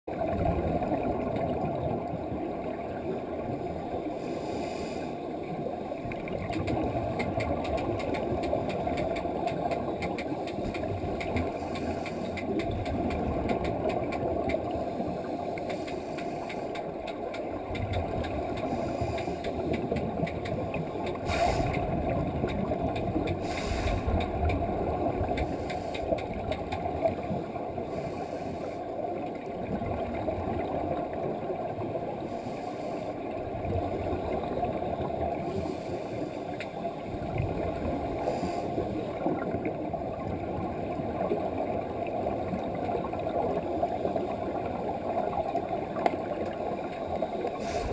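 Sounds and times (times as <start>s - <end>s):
low underwater drone: 0.1s - 47.9s
small clicks: 6.3s - 14.7s, 15.5s - 24.6s, 25.2s - 27.1s.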